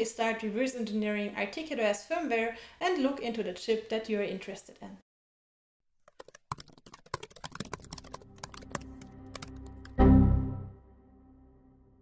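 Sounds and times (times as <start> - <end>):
keyboard typing clicks: 6.1 - 10.0.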